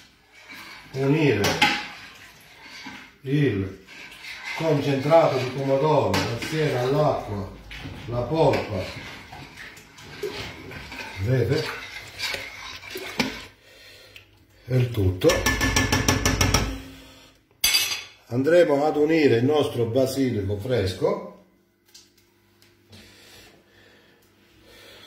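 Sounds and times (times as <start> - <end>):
ladle scraping a metal pot: 0.0 - 13.6.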